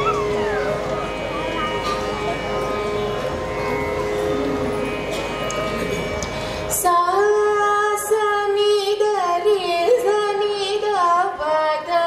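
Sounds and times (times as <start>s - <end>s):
steady drone: 0.0s - 7.8s
ornamented melodic line: 0.0s - 7.9s.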